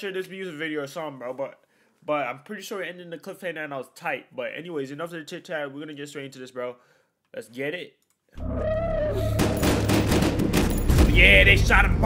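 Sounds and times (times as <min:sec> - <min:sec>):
low bass drone: 0:08.4 - 0:12.0.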